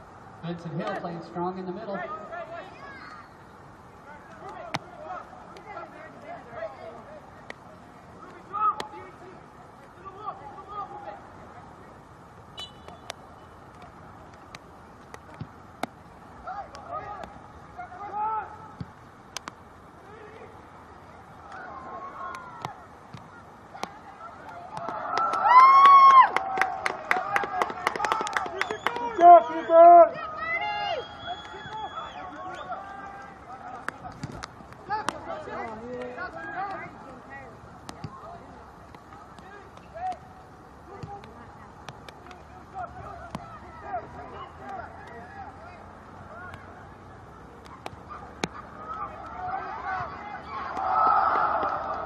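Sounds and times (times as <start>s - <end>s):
outdoor background noise: 0.0s - 52.0s
crowd shouting: 16.4s - 18.8s, 21.3s - 33.9s, 47.8s - 52.0s
sharp claps: 23.8s - 29.2s.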